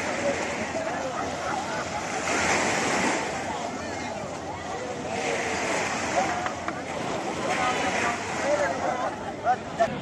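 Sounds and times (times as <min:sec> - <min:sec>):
crowd talking: 0:00.0 - 0:10.0
small waves washing onto sand: 0:00.0 - 0:10.0.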